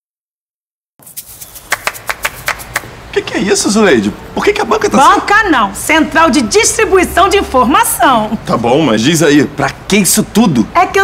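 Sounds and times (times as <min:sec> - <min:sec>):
sharp taps: 0:01.1 - 0:02.9.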